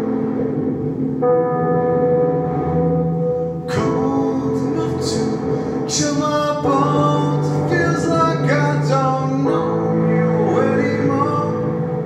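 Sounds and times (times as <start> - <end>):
sustained synthesizer chords: 0.0 - 12.0
person singing: 3.6 - 12.0.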